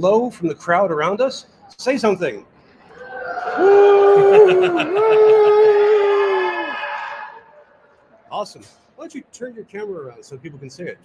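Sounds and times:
long drawn-out shout: 2.9 - 7.9.

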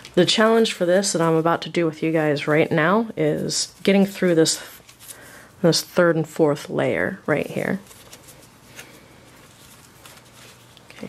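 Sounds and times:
plastic shelf liner rustling: 7.4 - 11.0.

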